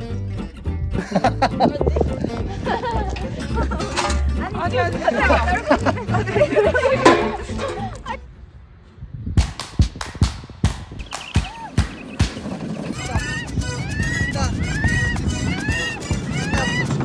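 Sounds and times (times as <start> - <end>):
carts rumbling on track: 11.1 - 17.0
high-pitched wailing cry: 12.9 - 17.0
music with clicking beat: 13.1 - 17.0.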